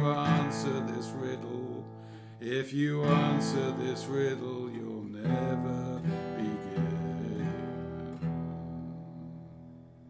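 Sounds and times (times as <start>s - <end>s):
acoustic guitar strumming: 0.0s - 10.0s.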